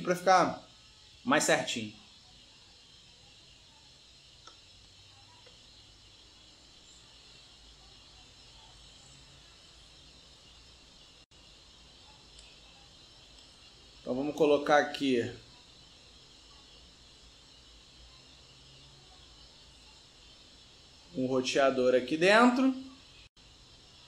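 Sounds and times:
microphone hiss: 0:00.0 - 0:24.0.

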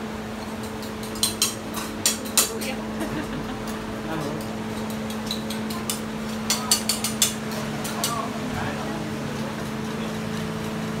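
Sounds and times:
mechanical hum of cooking equipment: 0:00.0 - 0:11.0.

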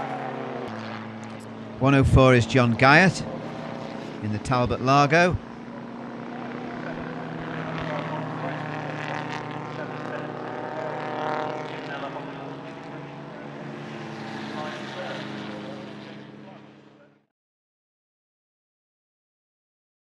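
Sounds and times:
racing car engines passing: 0:00.0 - 0:17.2.

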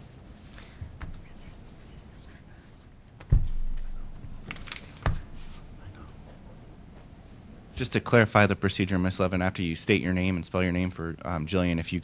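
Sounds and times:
faint whispered speech: 0:01.2 - 0:02.9, 0:05.4 - 0:06.4.

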